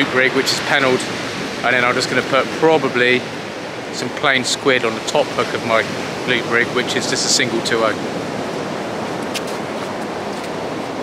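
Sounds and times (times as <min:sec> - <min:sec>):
surf washing onto beach: 0:00.0 - 0:11.0.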